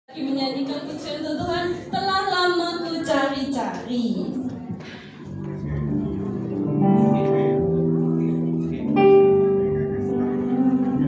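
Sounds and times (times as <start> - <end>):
electric guitar chords: 5.5 - 11.0.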